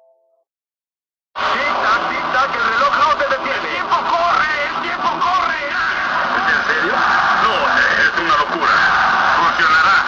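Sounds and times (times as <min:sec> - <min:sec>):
dense noisy background: 0:01.4 - 0:10.0.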